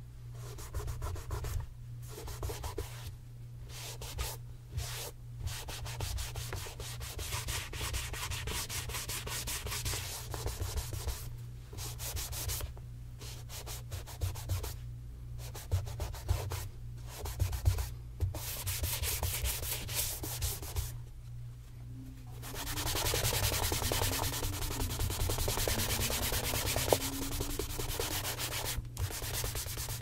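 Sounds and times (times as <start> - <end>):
cloth rubbing on leather shoe: 22.4 - 30.0.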